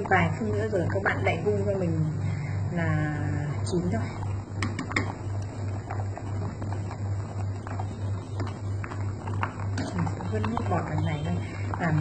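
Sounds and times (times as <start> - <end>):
pulsing low hum: 0.0 - 12.0
soup boiling and bubbling: 0.0 - 12.0.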